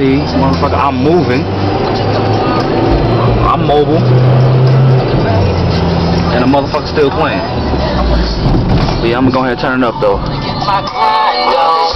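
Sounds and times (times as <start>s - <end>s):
song with deep bass on car stereo: 0.0s - 11.9s.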